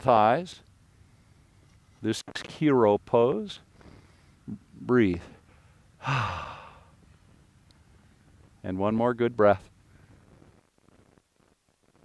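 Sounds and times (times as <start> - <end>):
man sighing: 6.0 - 7.0.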